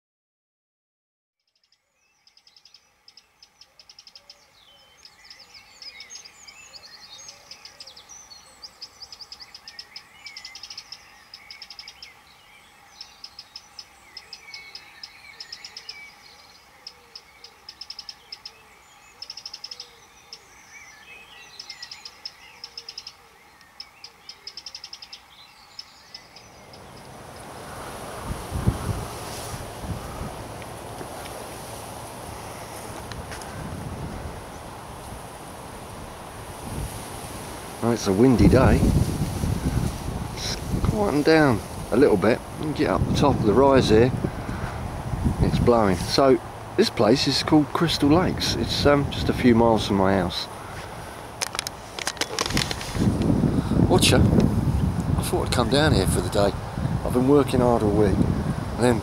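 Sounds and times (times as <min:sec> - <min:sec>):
birds chirping and trilling: 0:01.4 - 0:59.0
wind buffeting microphone: 0:26.2 - 0:59.0.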